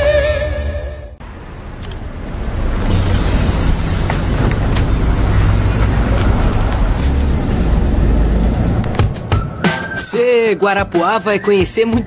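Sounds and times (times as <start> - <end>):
bus engine rumbling: 0.0 - 11.9
background music: 8.8 - 12.0.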